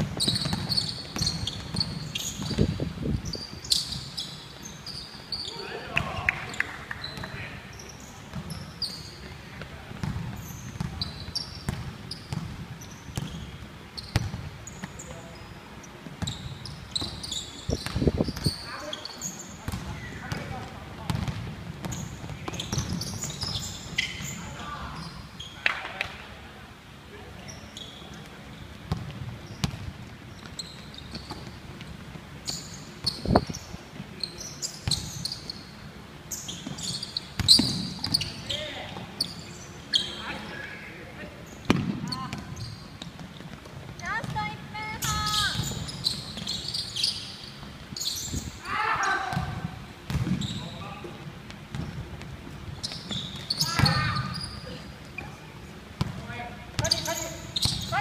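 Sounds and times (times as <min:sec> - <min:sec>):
basketball bouncing: 0:00.0 - 0:02.9, 0:10.0 - 0:13.5, 0:14.1 - 0:14.9, 0:19.7 - 0:23.6, 0:28.9 - 0:30.5, 0:37.4 - 0:38.2, 0:41.6 - 0:44.4, 0:49.3 - 0:50.4, 0:56.0 - 0:56.2
sneakers squeaking: 0:00.0 - 0:58.0
players calling out: 0:44.0 - 0:46.8.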